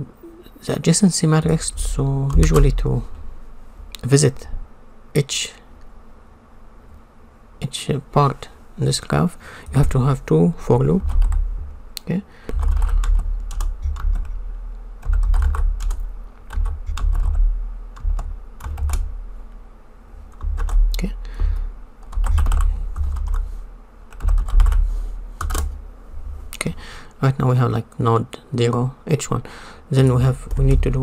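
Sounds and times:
computer keyboard typing: 11.0 - 11.4, 12.5 - 14.4, 15.0 - 17.4, 18.0 - 19.1, 20.3 - 21.1, 22.0 - 23.4, 24.1 - 24.8, 25.4 - 25.7.

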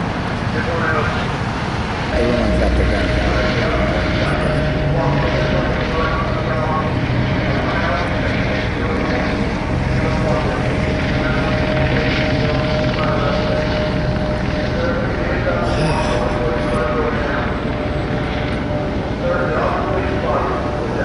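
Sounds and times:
constant whine: 0.0 - 21.0
helicopter drone: 0.0 - 21.0.

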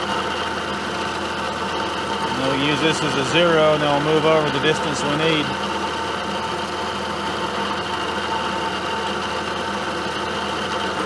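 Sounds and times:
milling machine whirring: 0.0 - 11.0.

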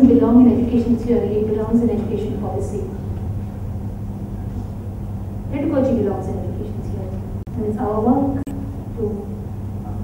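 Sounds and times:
steady low hum with rumble: 0.0 - 10.0.

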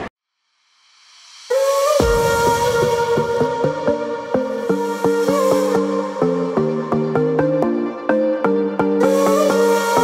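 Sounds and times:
electronic background music: 1.0 - 10.0.

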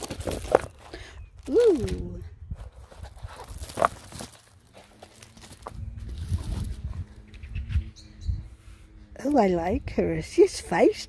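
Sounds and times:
canvas rustling and crinkling: 0.0 - 7.1.

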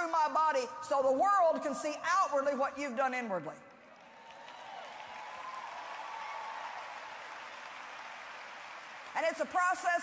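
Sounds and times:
audience applauding: 4.0 - 9.5.

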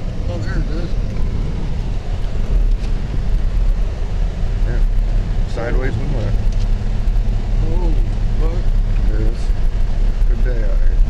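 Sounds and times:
engine and tyres rumbling in snow: 0.0 - 11.0.

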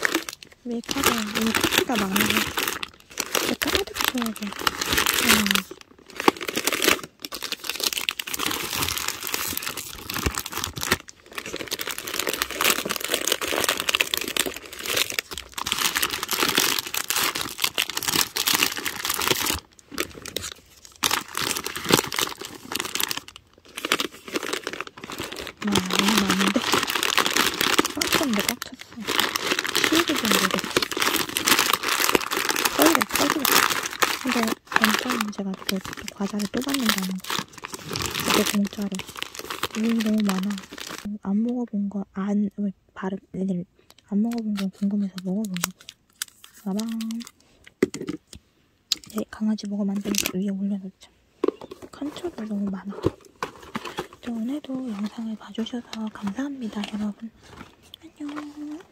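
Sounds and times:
plastic wrappers crinkling: 0.0 - 41.1, 44.2 - 48.2, 48.9 - 50.6, 51.4 - 58.9.

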